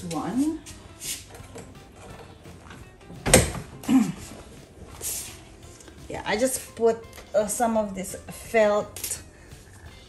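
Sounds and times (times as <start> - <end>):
chair creak: 1.1 - 4.2.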